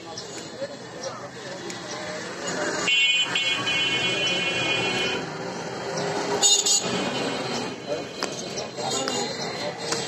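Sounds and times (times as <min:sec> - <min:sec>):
busy street noise: 0:00.0 - 0:10.0.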